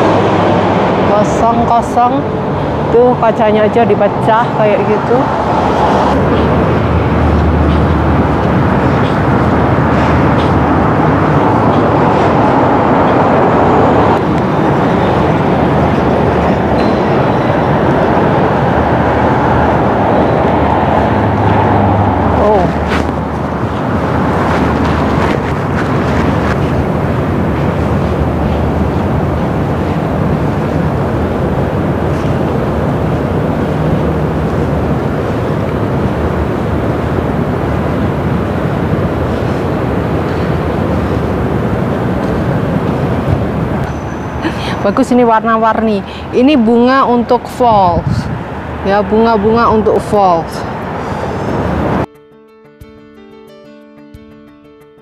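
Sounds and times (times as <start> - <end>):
steady rush of traffic: 0.0 - 52.1.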